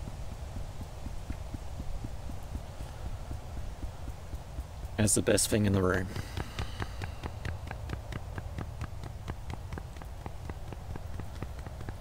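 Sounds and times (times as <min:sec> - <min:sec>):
fingertips tapping: 0:00.0 - 0:12.0.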